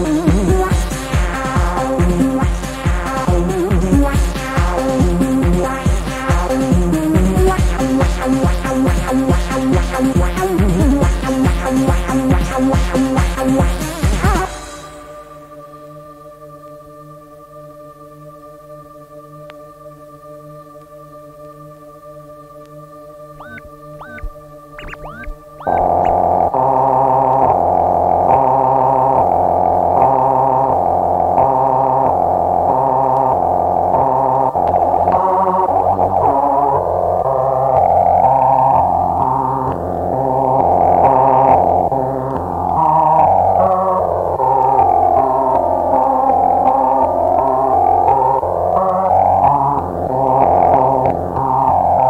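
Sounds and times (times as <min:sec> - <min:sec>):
electronic dance music: 0:23.4 - 0:26.4
distorted synthesizer chords: 0:23.4 - 0:36.3
alternating synth bass: 0:23.4 - 0:37.8.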